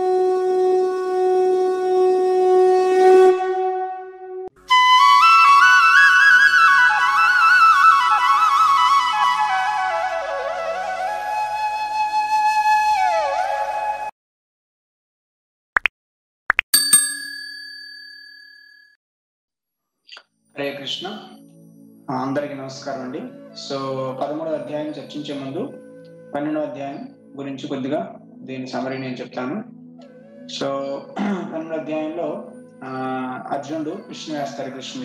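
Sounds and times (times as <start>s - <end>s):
conch shell blown: 0.0s - 4.5s
notification bell ding: 16.8s - 18.9s.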